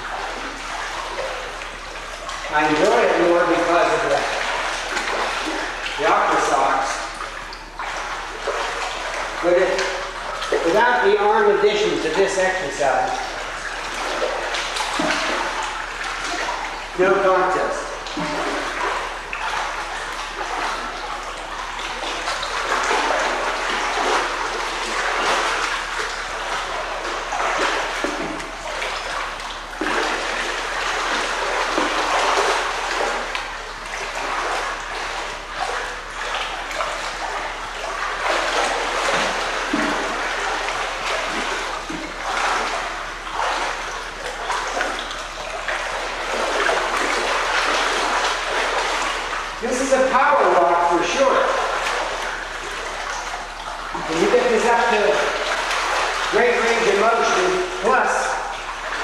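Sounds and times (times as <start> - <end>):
pool water splashing: 0.0 - 59.0.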